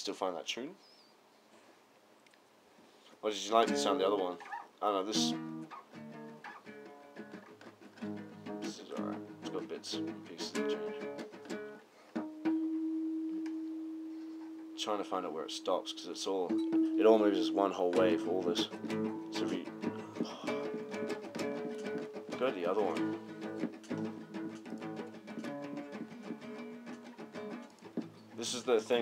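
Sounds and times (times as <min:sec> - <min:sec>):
acoustic guitar plucks: 0:03.5 - 0:29.0.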